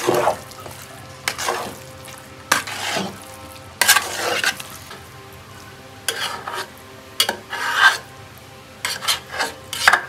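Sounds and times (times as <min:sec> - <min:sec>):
spoon scraping metal pot: 0:00.0 - 0:05.0, 0:06.0 - 0:08.1, 0:08.8 - 0:10.0
metal spoon stirring rice in pot: 0:00.0 - 0:05.1, 0:06.0 - 0:08.1, 0:08.8 - 0:10.0.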